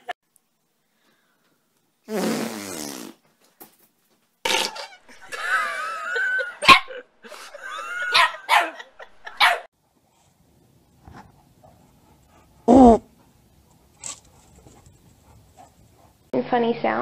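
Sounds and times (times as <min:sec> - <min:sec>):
sharp dog barks: 0:09.4 - 0:09.7.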